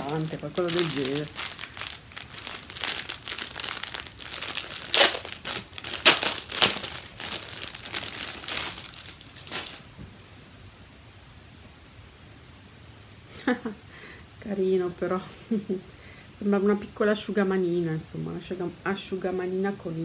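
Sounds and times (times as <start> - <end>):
gift packaging crinkling: 0.0 - 9.9.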